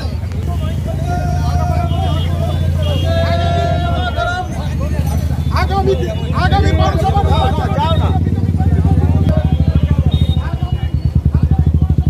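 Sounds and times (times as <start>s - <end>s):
long held call: 0.0s - 12.0s
marchers shouting slogans: 0.0s - 12.0s.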